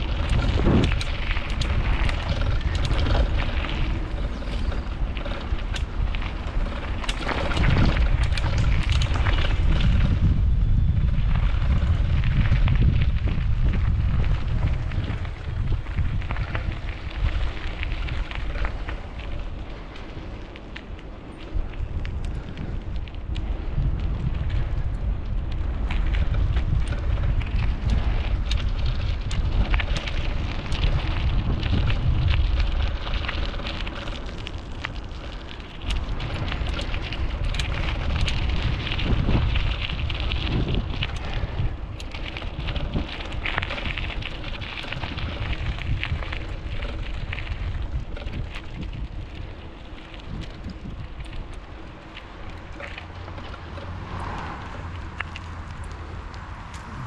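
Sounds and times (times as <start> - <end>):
crackling over gravel: 0.0 - 57.0
wind buffeting microphone: 0.0 - 57.0.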